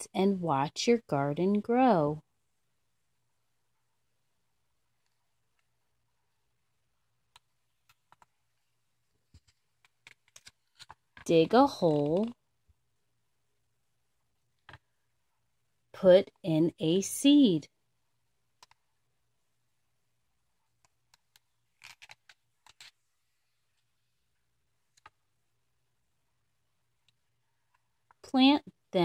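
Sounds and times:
book page turning: 0:09.3 - 0:12.4, 0:21.3 - 0:23.2
faint clicks of book pages: 0:20.8 - 0:23.0.

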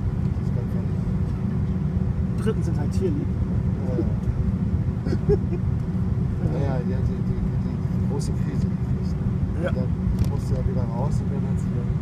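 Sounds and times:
jet airliner taxiing rumble: 0:00.0 - 0:12.0.

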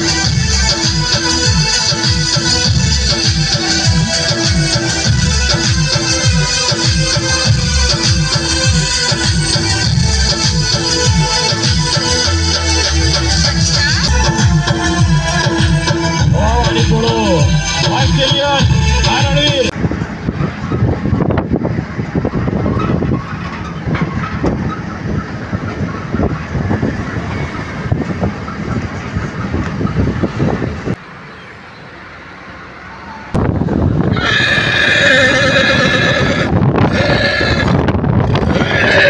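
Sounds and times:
music: 0:00.0 - 0:19.7
road noise: 0:00.0 - 0:39.0
wind: 0:00.0 - 0:39.0
horse whinnying: 0:34.1 - 0:37.8, 0:38.4 - 0:39.0.

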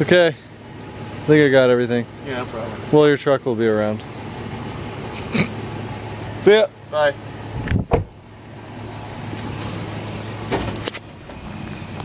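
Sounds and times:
car engine running: 0:00.0 - 0:12.0
car door shutting: 0:07.6 - 0:08.2, 0:10.4 - 0:11.5.

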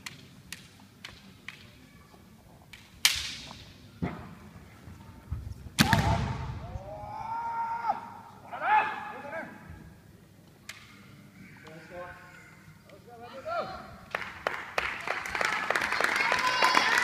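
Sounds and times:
bamboo swords clicking together: 0:00.0 - 0:01.7, 0:02.7 - 0:03.6, 0:10.6 - 0:11.1
bamboo sword strike crack: 0:05.8 - 0:06.4.

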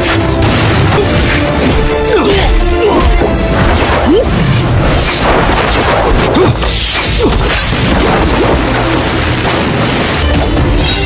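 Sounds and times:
film soundtrack music: 0:00.0 - 0:11.0
crashing and whacking impacts: 0:03.2 - 0:11.0.

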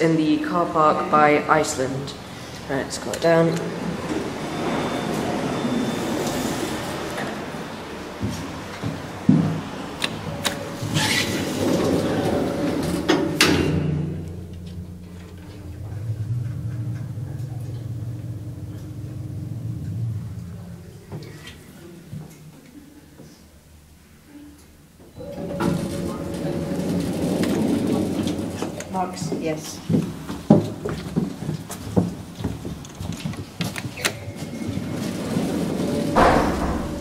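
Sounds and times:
lift car humming: 0:00.0 - 0:37.0
lift doors sliding shut: 0:02.2 - 0:22.5, 0:25.0 - 0:31.4, 0:33.5 - 0:37.0
knocks: 0:36.2 - 0:37.0.

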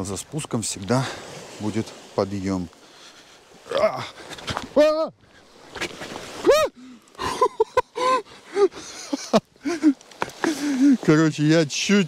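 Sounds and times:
man crying out startled: 0:06.4 - 0:08.7.

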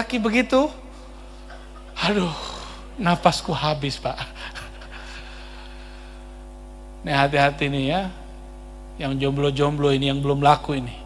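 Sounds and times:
sound system hum: 0:00.0 - 0:11.0
breathy exhale into microphone: 0:04.9 - 0:06.5.

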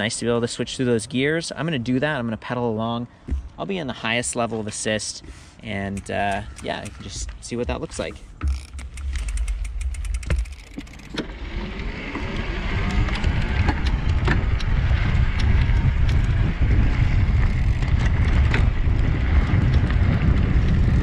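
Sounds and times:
drivetrain clicks: 0:04.6 - 0:21.0
low rumble over dirt: 0:05.7 - 0:21.0.

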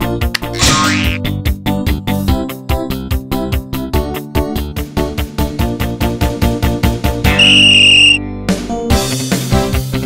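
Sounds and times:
background music with quick beat: 0:07.3 - 0:08.2
loud high whistle blast: 0:07.3 - 0:08.2.

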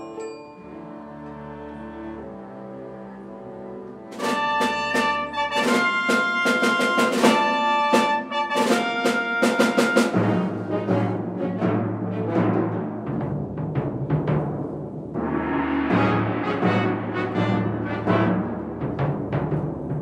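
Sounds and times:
chamber orchestra playing: 0:00.0 - 0:14.0, 0:15.0 - 0:20.0.

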